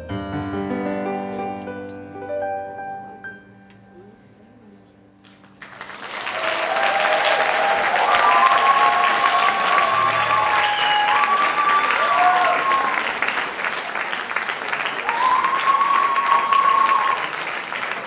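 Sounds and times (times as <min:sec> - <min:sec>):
audience applauding: 0:05.2 - 0:18.0
high-pitched crowd calls: 0:06.4 - 0:13.3, 0:15.0 - 0:17.4.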